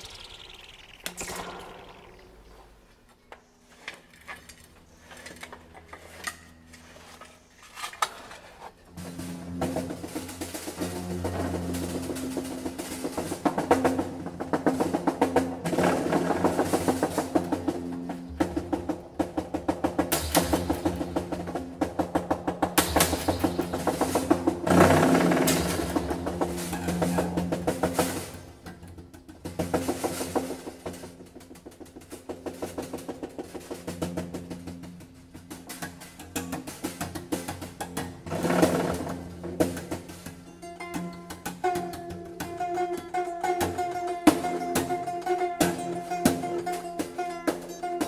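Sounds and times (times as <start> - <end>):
plucked bass with snare rattle: 0.0 - 2.5, 8.9 - 48.0
metal spring twanging: 0.0 - 3.1, 20.1 - 48.0.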